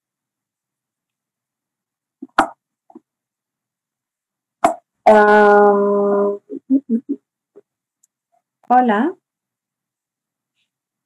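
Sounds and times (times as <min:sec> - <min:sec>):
short sharp pop: 0:02.2 - 0:02.6, 0:04.6 - 0:04.9.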